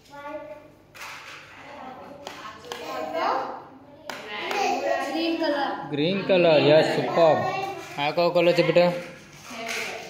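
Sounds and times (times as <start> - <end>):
voices speaking: 1.5 - 10.0.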